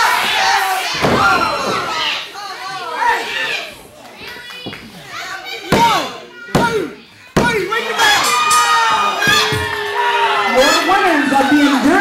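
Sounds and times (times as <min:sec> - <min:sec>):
audience shouting: 0:00.0 - 0:03.8, 0:05.2 - 0:12.0.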